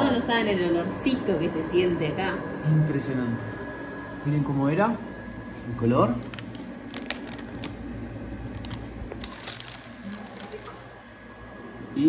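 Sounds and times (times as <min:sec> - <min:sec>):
low steady hum: 0:00.0 - 0:12.0
plastic bag crinkling: 0:06.2 - 0:11.2.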